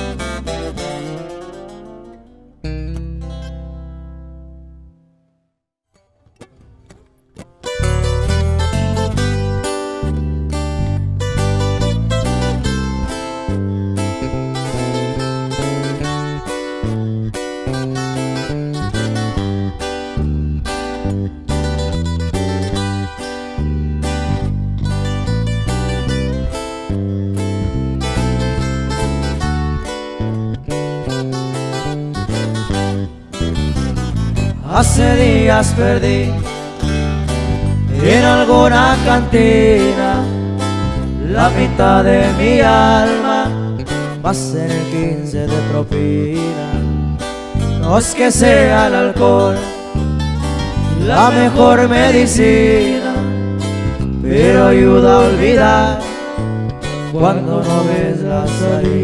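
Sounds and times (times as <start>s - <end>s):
acoustic guitar band: 0.0s - 5.0s, 5.9s - 59.0s
deep bass line: 0.0s - 5.0s, 7.8s - 59.0s
strummed guitar: 0.0s - 5.3s, 5.9s - 59.0s.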